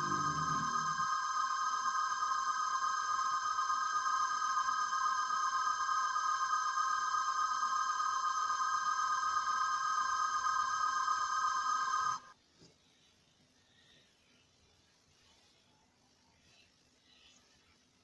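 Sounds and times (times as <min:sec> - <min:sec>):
sustained electronic tone: 0:00.0 - 0:12.3.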